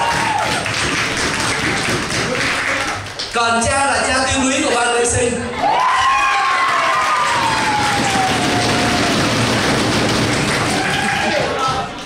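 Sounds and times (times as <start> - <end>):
people applauding: 0.0 - 3.5, 5.6 - 12.0
person cheering: 5.6 - 9.2, 10.7 - 11.7.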